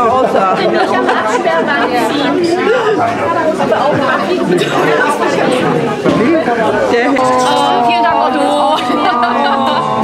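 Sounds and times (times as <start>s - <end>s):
overlapping voices chattering: 0.0s - 10.0s.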